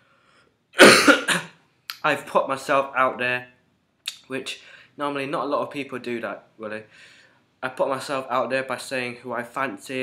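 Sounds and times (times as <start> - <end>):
man coughing: 0.8 - 1.6.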